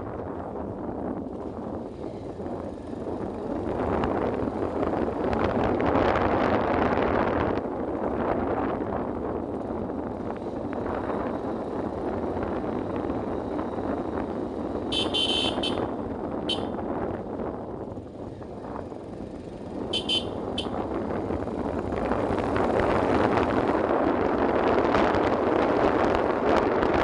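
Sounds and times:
wind on microphone: 0:00.0 - 0:27.0
motorcycle engine running: 0:00.2 - 0:27.0
motorcycle horn beeping: 0:14.9 - 0:16.8, 0:19.9 - 0:20.8.

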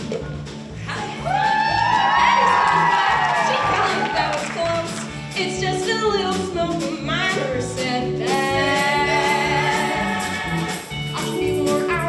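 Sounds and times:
pit band music: 0:00.0 - 0:12.0
audience cheering and whooping: 0:01.0 - 0:04.9.

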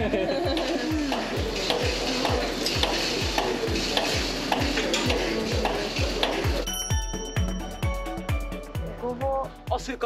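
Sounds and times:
milking machine pulsing: 0:00.0 - 0:06.7.

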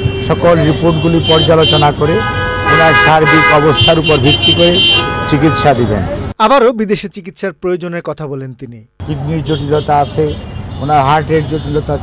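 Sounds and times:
vehicle horn multi-tone blare: 0:00.0 - 0:06.0
man talking: 0:00.2 - 0:12.0.

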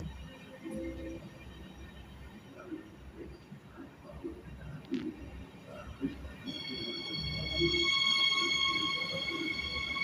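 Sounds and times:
electric train whine: 0:05.6 - 0:10.0.

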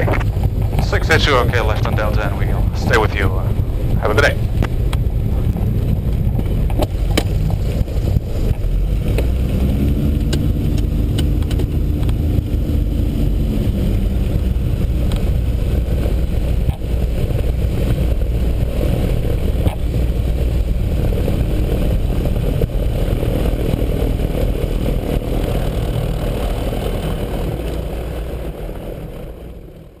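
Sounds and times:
aircraft engines droning: 0:00.0 - 0:30.0
hum: 0:00.0 - 0:30.0.

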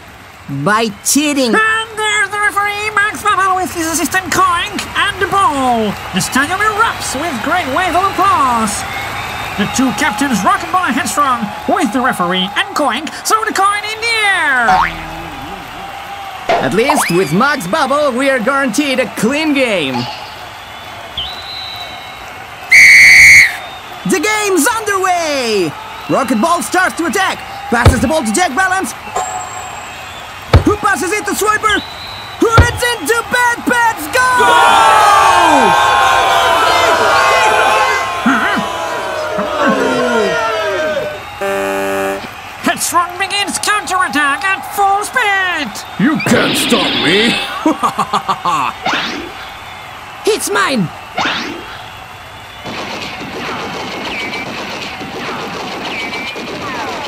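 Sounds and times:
referee's whistle blast: 0:16.6 - 0:17.4, 0:21.2 - 0:23.9, 0:29.1 - 0:31.0, 0:31.6 - 0:33.1, 0:41.0 - 0:42.5, 0:46.2 - 0:47.6
cartoon character laughing: 0:47.6 - 0:48.8.

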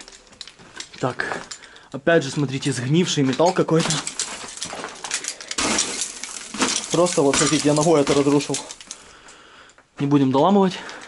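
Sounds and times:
debris clinking and scraping: 0:00.0 - 0:09.4
rusted metal crunching underfoot: 0:00.0 - 0:10.1.

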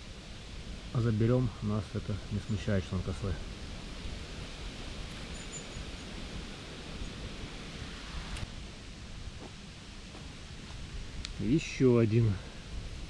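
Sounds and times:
faint high chirps: 0:05.1 - 0:06.2.

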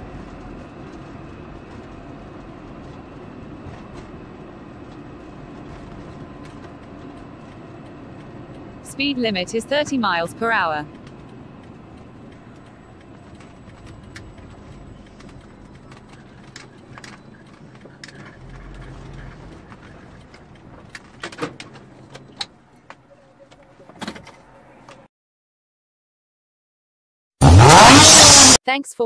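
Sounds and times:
car moving slowly inside cabin: 0:00.0 - 0:25.1.

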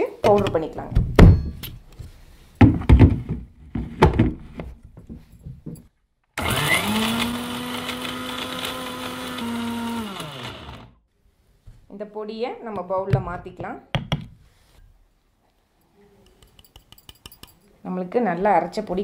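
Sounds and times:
mixer grinder motor running: 0:06.4 - 0:11.0.

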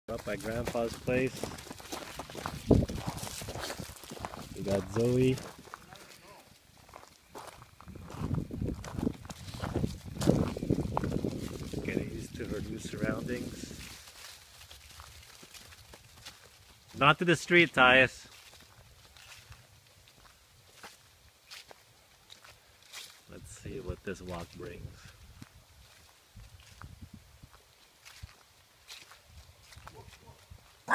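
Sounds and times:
footsteps crunching through leaves: 0:00.1 - 0:30.9.

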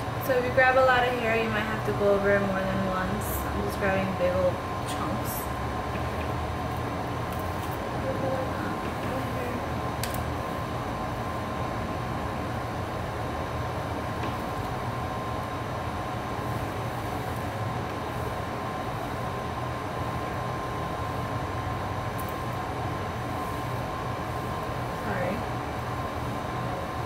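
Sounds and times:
droning machine hum: 0:00.0 - 0:27.0.

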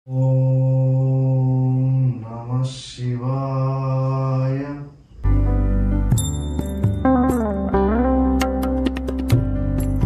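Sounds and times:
man chanting: 0:00.1 - 0:05.1.

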